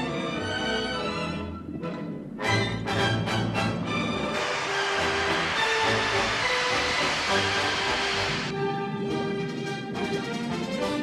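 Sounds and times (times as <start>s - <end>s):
orchestral film music: 0.0s - 11.0s
fire extinguisher hissing: 3.9s - 8.5s.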